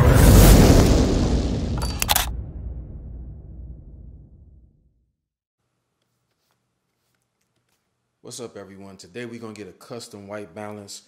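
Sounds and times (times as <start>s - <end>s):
explosion rumble: 0.0s - 5.0s
camera shutter click: 1.8s - 2.3s.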